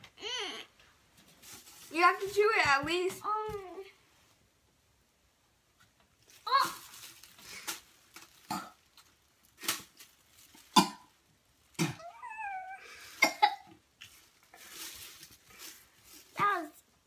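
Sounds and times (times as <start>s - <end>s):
girl strained vocal sound: 0.2s - 0.7s
girl coughing and retching: 8.5s - 8.8s, 10.8s - 11.1s, 13.2s - 13.7s.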